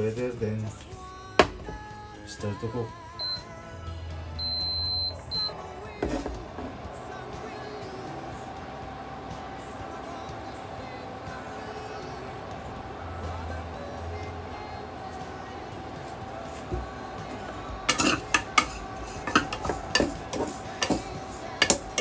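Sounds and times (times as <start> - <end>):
cooktop control panel beeps: 3.2 - 3.5, 4.4 - 5.6
steady background sound: 3.9 - 22.0.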